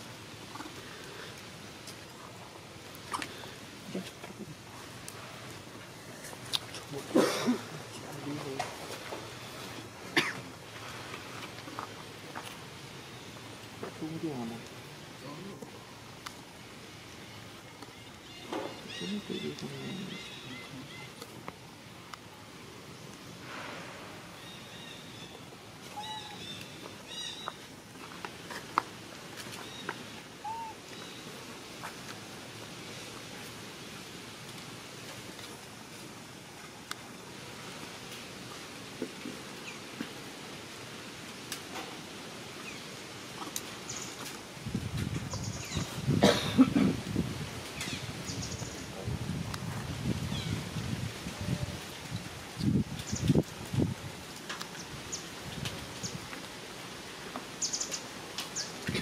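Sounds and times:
faint outdoor hiss: 0.0 - 59.0
baby monkey coo call: 25.9 - 27.4, 30.4 - 30.8.

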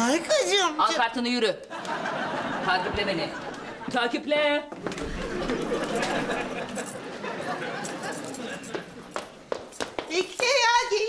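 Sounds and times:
footsteps on wooden floor: 4.7 - 6.3, 8.7 - 10.6.

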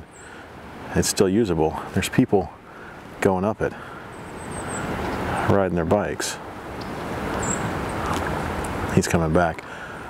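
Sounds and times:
rushing floodwater: 0.0 - 10.0
wind: 0.0 - 10.0.

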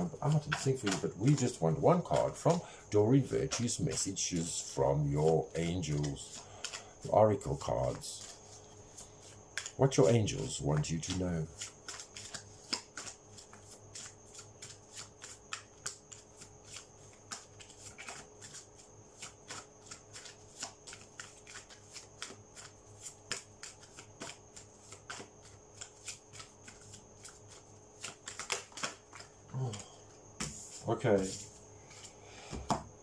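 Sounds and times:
cards being shuffled: 0.0 - 2.6, 3.2 - 32.0.

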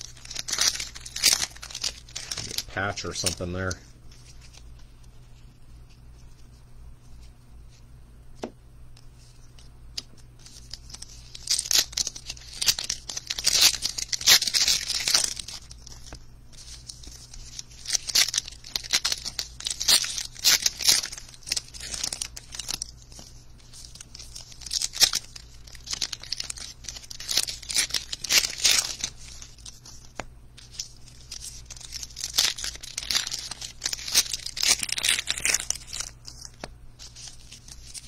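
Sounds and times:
wrapper tearing and crinkling: 0.0 - 4.8, 10.4 - 38.0.

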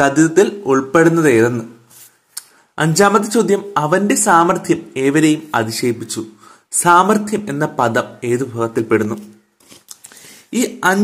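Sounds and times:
person lecturing: 0.0 - 9.4, 10.2 - 11.0.

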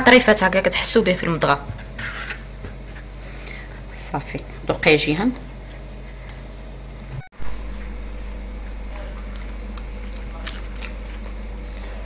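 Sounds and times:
hands mixing food in a bowl: 0.0 - 7.1
steady low hum: 0.0 - 12.0.

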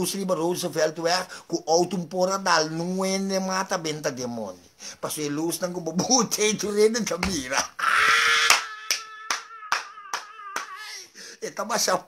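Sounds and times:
person clapping hands: 8.4 - 10.9.

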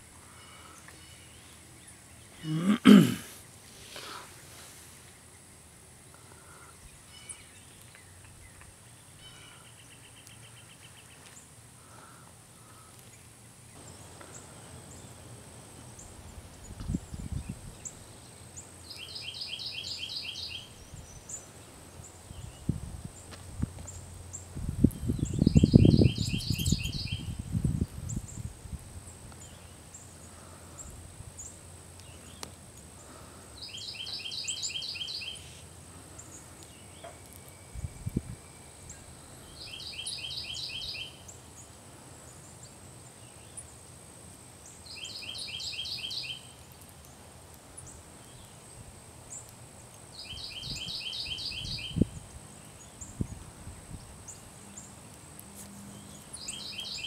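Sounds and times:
songbird singing: 0.0 - 57.0.

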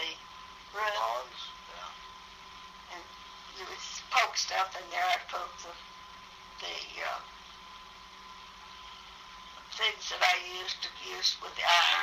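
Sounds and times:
background hiss: 0.0 - 12.0
faint steady hum: 0.0 - 12.0.

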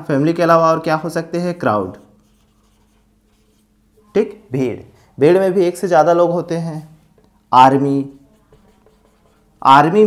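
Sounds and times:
low steady hum: 0.0 - 10.0
marker pen writing on whiteboard: 1.9 - 3.7, 8.1 - 10.0.

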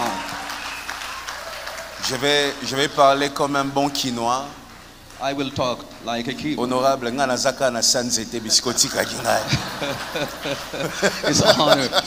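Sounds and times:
audience applause: 0.0 - 3.3.

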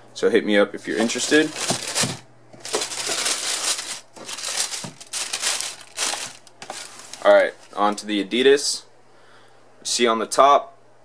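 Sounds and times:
tissue paper crinkling: 0.9 - 8.3.

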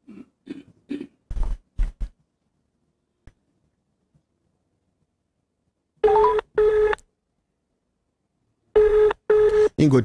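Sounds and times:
telephone ringback tone: 6.0 - 7.0, 8.8 - 9.7.

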